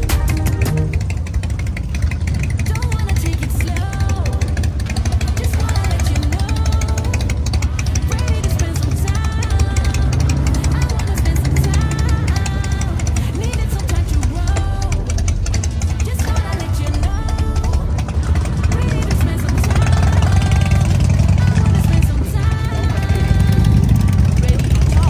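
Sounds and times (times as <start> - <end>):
pop song with singing: 0.0 - 1.2, 2.4 - 25.0.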